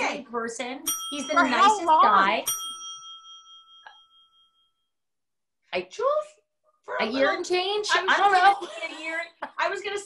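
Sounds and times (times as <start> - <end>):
bell-like ding: 0.8 - 5.0.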